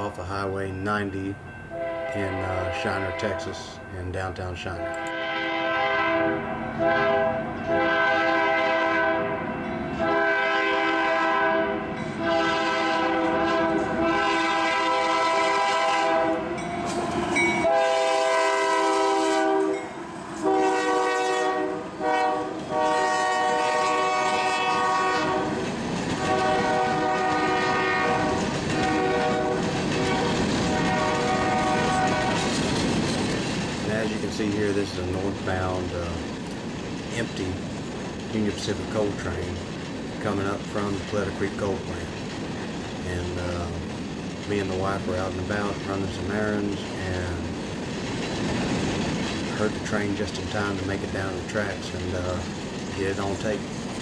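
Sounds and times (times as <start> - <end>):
passing train rumble and clatter: 0.0 - 54.0
train air horn blasts: 1.7 - 3.8, 4.8 - 16.6, 17.6 - 25.6, 26.2 - 32.5.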